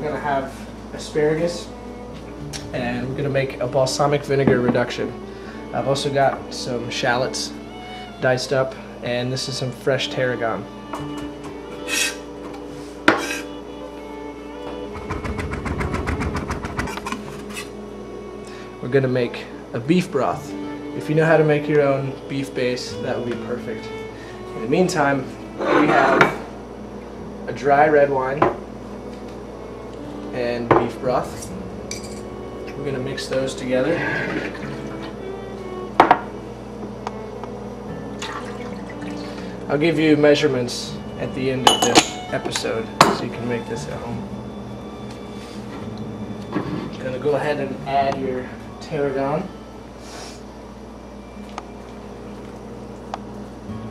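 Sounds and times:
soft background music: 0:00.0 - 0:53.9
glass clinking: 0:31.9 - 0:32.3, 0:41.6 - 0:42.3
liquid pouring into glass bowl: 0:38.2 - 0:39.2.

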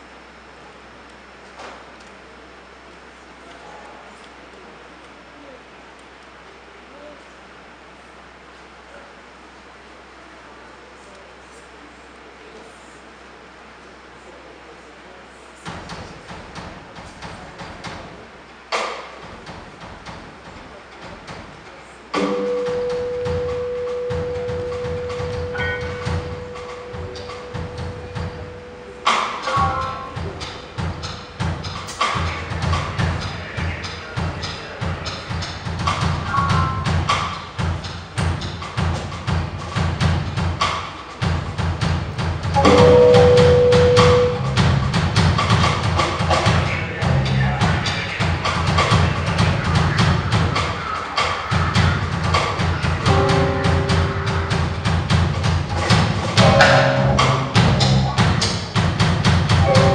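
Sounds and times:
drum kit: 0:15.6 - 0:59.9
keyboard held note: 0:22.2 - 0:30.8, 0:42.6 - 0:44.6, 0:53.0 - 0:54.9, 0:56.4 - 0:58.2, 0:59.7 - 0:59.9
electric bass line: 0:42.5 - 0:47.7, 0:51.7 - 0:59.9.

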